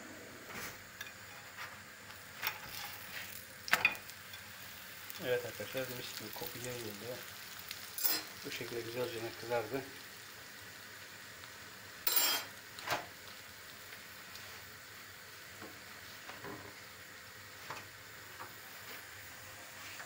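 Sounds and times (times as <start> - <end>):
flatbread sizzling in a pan: 0.5 - 20.0.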